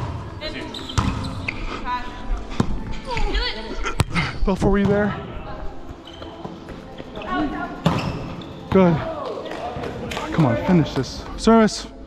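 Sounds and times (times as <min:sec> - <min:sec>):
voices echoing in a gymnasium: 0:00.0 - 0:12.0.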